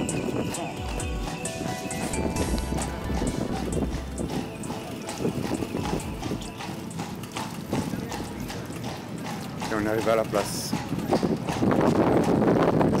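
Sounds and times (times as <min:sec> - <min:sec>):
music playing: 0:00.0 - 0:09.2
hooves clip-clopping on cobblestones: 0:00.0 - 0:13.0.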